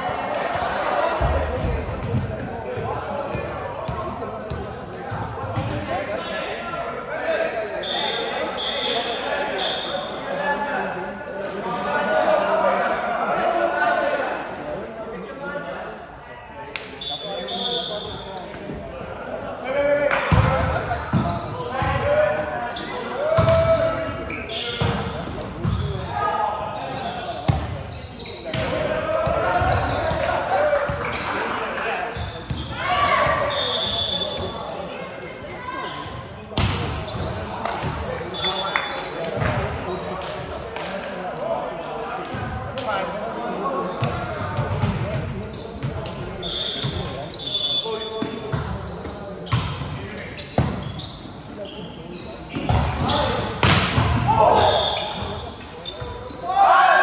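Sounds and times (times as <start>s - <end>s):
players calling out and talking: 0.0s - 57.0s
volleyball being hit and bouncing: 52.6s - 54.5s.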